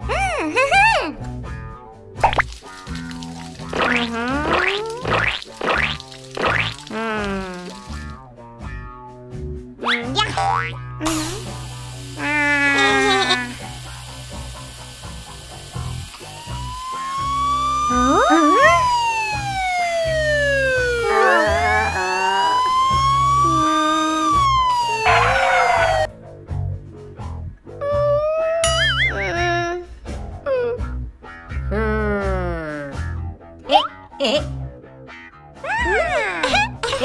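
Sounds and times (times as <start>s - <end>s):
cartoon background music: 0.0s - 37.0s
police siren sound effect: 16.2s - 26.1s.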